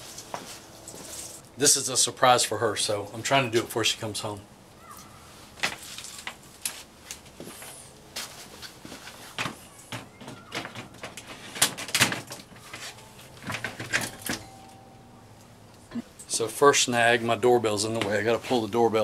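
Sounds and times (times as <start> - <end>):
storm door frame knocking and rattling: 9.9 - 12.4.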